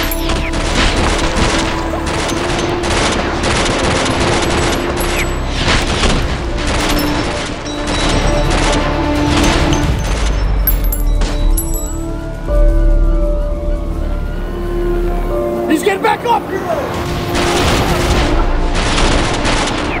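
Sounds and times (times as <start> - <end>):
rapid gunfire: 0.0 - 10.2, 17.4 - 20.0
background music: 0.0 - 20.0.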